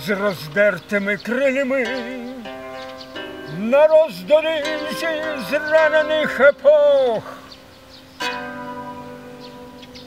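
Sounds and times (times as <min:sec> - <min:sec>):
bandura chord strummed: 0:01.6 - 0:10.0.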